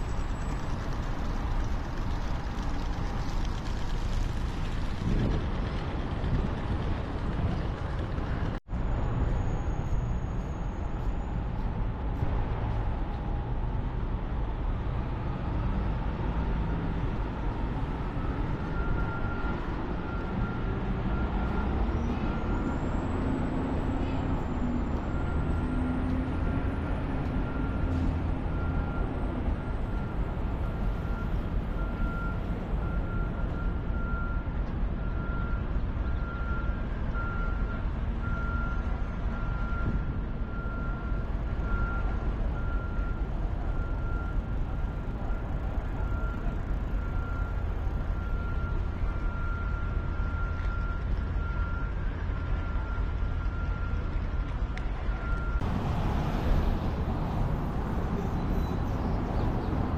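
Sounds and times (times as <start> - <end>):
city traffic rumble: 0.0 - 59.9.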